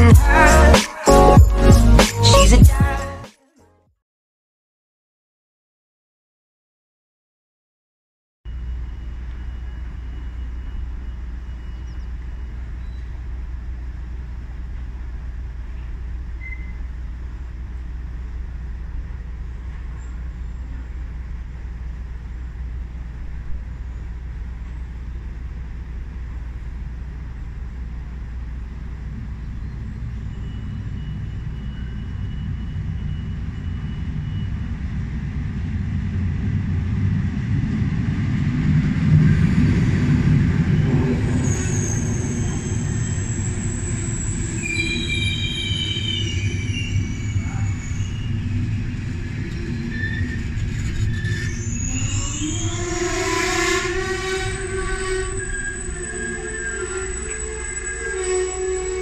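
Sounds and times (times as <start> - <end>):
train brakes and wheels squealing: 8.5 - 13.5, 15.7 - 17.1, 28.7 - 35.1, 39.3 - 59.0
train rumbling: 8.5 - 59.0.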